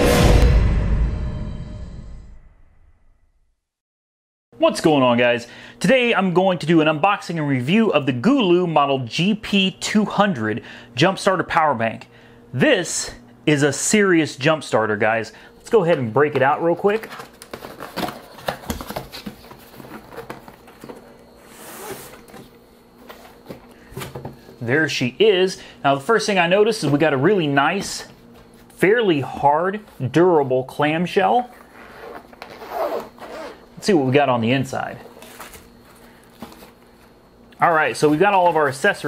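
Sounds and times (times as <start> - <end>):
hard-shell case rustling: 16.3 - 22.5.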